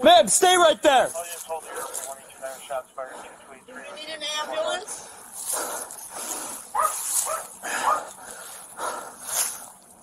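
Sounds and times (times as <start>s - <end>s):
dog barking: 6.7s - 8.2s.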